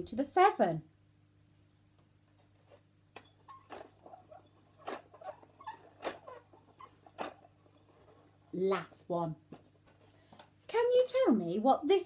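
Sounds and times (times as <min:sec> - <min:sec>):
short squeaks: 0:03.2 - 0:08.4.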